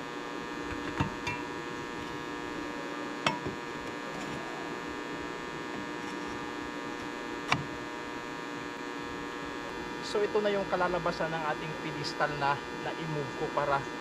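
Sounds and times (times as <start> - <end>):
electrical hum: 0.0 - 14.0.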